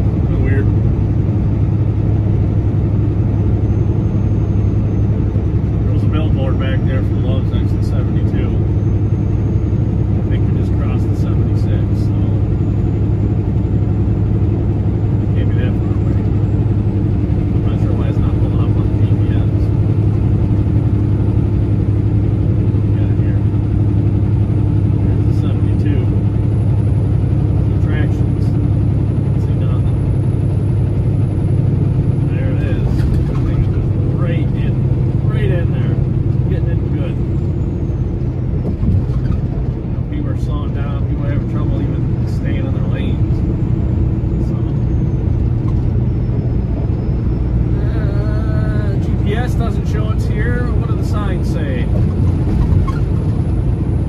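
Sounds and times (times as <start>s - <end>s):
truck engine and road noise: 0.0s - 54.0s.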